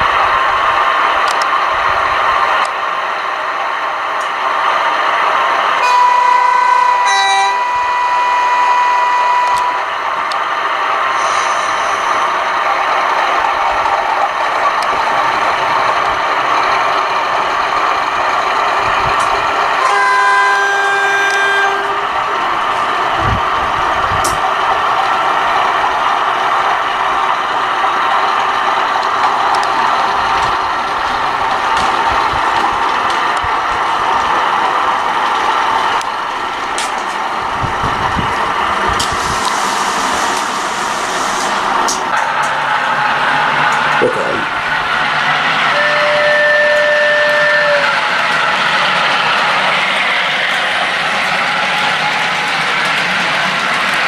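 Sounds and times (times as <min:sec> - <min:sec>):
diesel locomotive running: 0:00.0 - 0:54.0
freight train passing: 0:00.0 - 0:54.0
train horn: 0:05.8 - 0:09.9, 0:19.8 - 0:22.1, 0:45.7 - 0:48.2.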